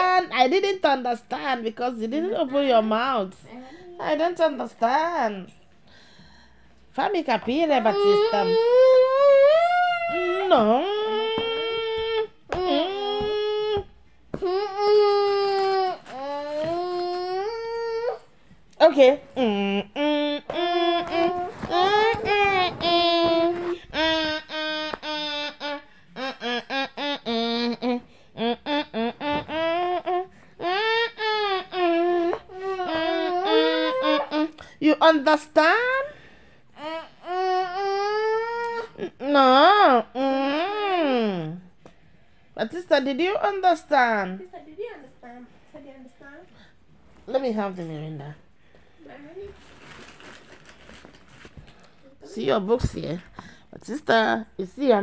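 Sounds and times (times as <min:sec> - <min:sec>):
faint rustling and handling noise: 0:10.4 - 0:19.5, 0:20.5 - 0:25.0, 0:44.3 - 0:55.0.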